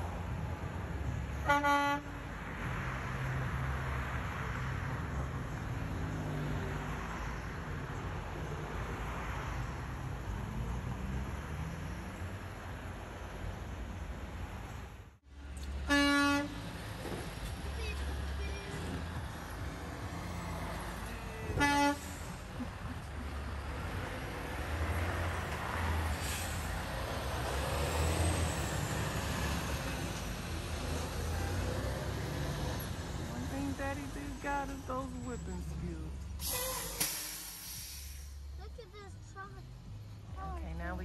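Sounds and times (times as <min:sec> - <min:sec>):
truck engine rumble: 0:00.0 - 0:41.0
short horn honks: 0:01.4 - 0:02.2, 0:15.8 - 0:16.6, 0:21.5 - 0:22.3.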